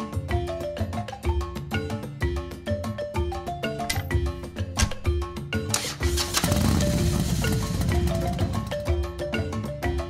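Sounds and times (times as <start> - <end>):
upbeat marimba-like music: 0.0 - 10.0.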